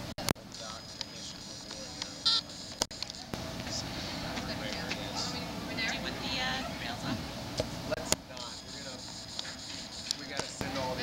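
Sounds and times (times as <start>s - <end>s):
indistinct voices talking: 0.4s - 11.0s.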